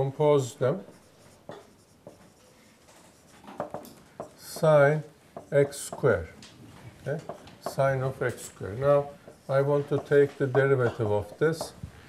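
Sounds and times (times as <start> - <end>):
marker scratching on whiteboard: 0.4 - 6.3, 7.1 - 12.0
marker tapping on whiteboard: 0.9 - 2.4, 3.2 - 6.2, 7.1 - 8.1, 9.0 - 11.8.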